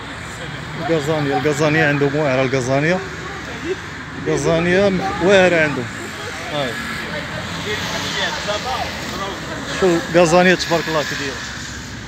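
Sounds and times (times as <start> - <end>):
indistinct voices talking: 0.0 - 12.0.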